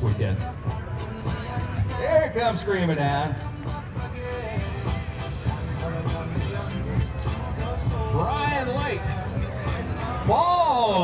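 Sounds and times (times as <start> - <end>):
music over public address system: 0.0 - 11.0.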